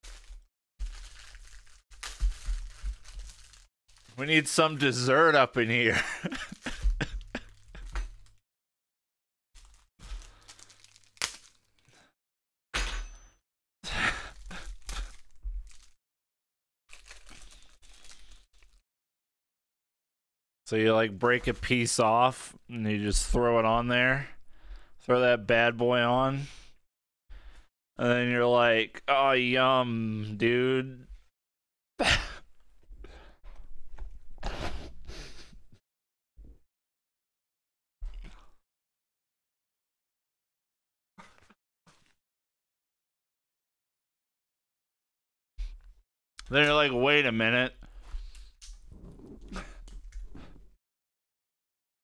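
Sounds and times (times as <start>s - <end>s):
plastic wrapper crinkling and tearing: 0.0s - 4.8s, 9.6s - 12.0s, 14.4s - 16.0s, 16.9s - 18.8s
man's breathy laughter: 6.0s - 8.0s, 34.4s - 35.8s.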